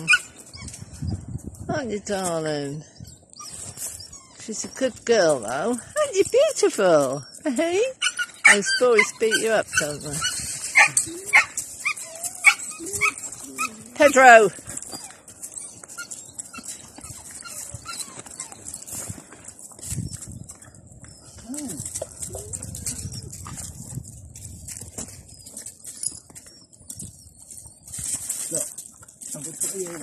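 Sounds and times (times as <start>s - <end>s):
paws scrabbling on gravel: 0.0s - 2.5s, 3.3s - 30.0s.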